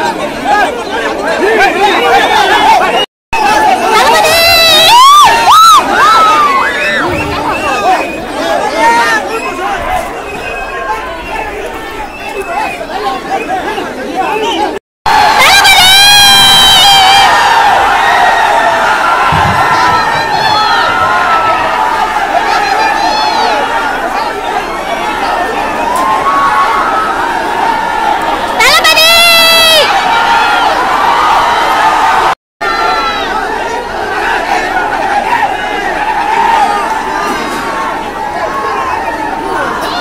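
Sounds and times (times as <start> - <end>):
crowd cheering and shouting: 0.0 - 40.0.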